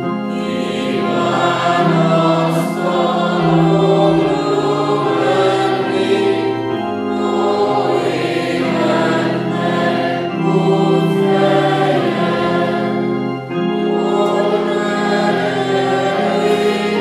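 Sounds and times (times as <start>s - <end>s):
congregation singing a hymn: 0.0s - 17.0s
electronic keyboard: 0.0s - 17.0s.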